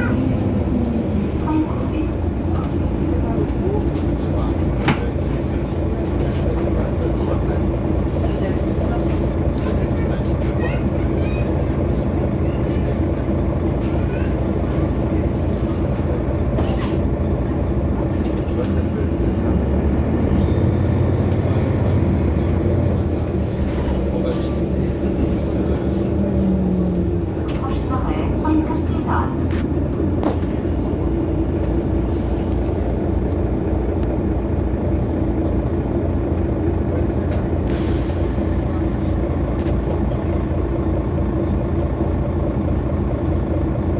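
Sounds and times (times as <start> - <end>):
bus engine droning: 0.0 - 43.9.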